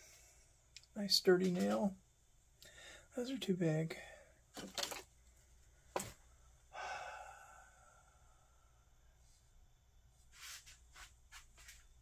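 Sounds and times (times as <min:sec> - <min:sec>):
faint breathing: 0:02.6 - 0:03.2, 0:04.0 - 0:04.5, 0:06.3 - 0:09.6
person sighing: 0:06.7 - 0:08.2.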